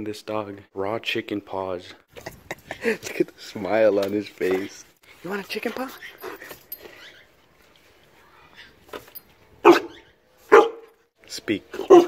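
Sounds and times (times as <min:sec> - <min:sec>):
dog barking: 0:09.6 - 0:11.0, 0:11.8 - 0:12.0.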